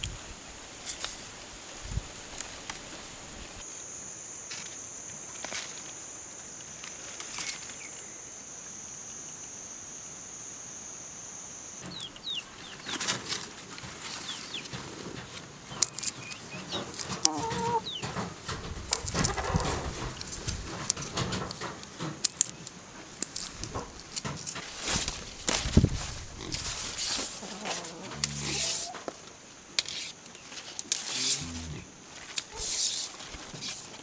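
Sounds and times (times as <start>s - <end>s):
high-pitched insect drone: 3.6s - 12.7s, 27.0s - 29.0s, 31.0s - 31.9s
chickens clucking: 16.2s - 20.2s, 27.1s - 29.1s.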